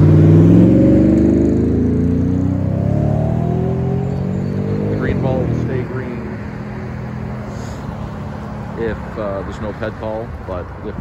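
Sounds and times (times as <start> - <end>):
vehicle engine accelerating: 0.0 - 10.0.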